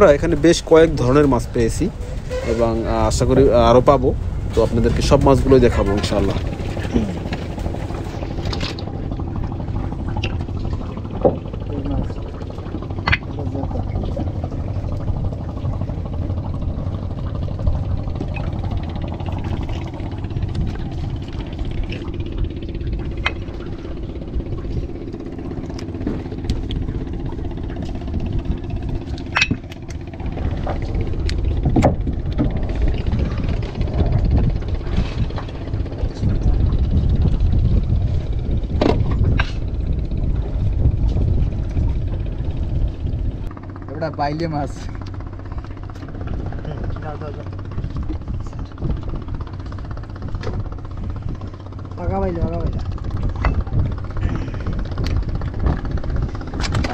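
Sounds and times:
boat engine rumbling: 0:00.0 - 0:56.9.

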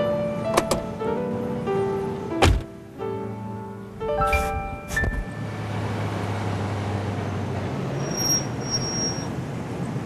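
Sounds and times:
low engine hum: 0:00.0 - 0:10.0
traffic noise: 0:00.0 - 0:10.0.

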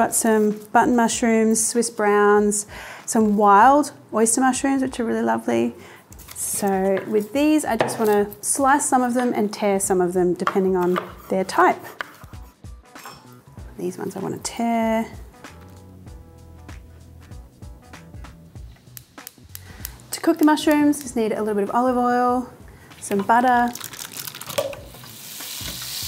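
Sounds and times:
quiet background music: 0:00.0 - 0:26.0
butter sizzling in oil: 0:23.8 - 0:26.0.

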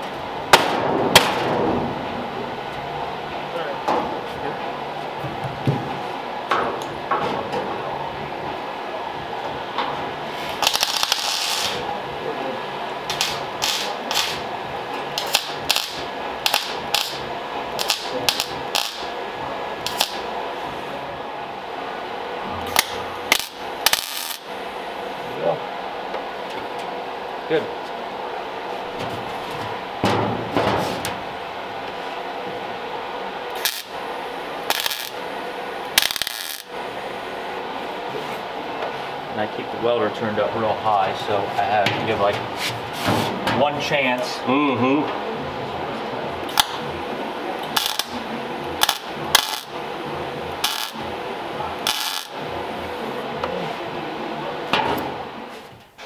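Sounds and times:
steady hum: 0:00.0 - 0:56.0
welding crackle: 0:10.4 - 0:11.9, 0:13.0 - 0:20.4, 0:22.6 - 0:24.5, 0:33.5 - 0:36.8, 0:46.4 - 0:46.8, 0:47.6 - 0:49.8, 0:50.5 - 0:51.2, 0:51.8 - 0:52.4.

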